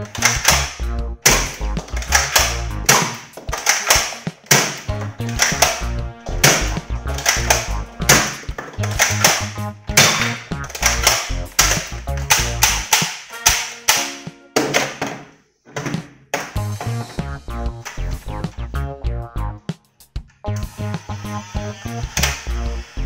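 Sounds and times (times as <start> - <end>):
music with heavy bass beat: 0.0 - 3.6, 4.3 - 12.9, 16.6 - 23.0.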